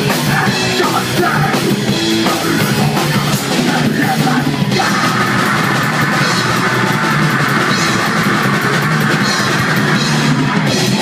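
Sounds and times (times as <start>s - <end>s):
electric guitar: 0.0s - 11.0s
fast drumming on drum kit: 0.0s - 11.0s.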